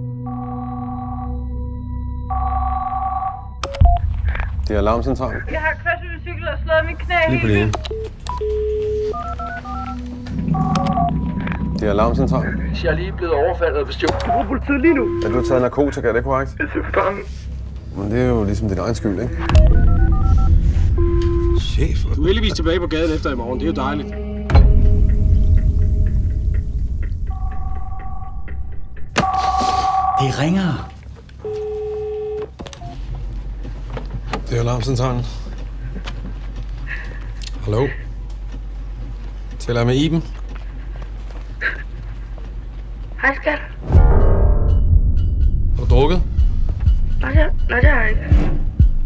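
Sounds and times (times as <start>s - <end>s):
steady telephone tone: 0.2s - 1.5s, 7.8s - 11.9s, 14.2s - 15.7s, 29.2s - 33.0s
two-note telephone tone: 7.7s - 11.7s, 14.2s - 15.8s, 29.2s - 33.0s
short beep: 14.2s - 15.7s, 19.4s - 21.8s.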